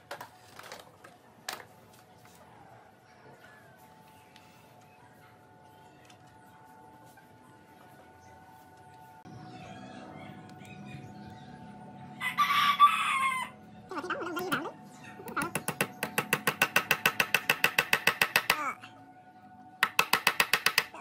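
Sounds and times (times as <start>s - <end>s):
rooster crowing: 9.5s - 13.6s.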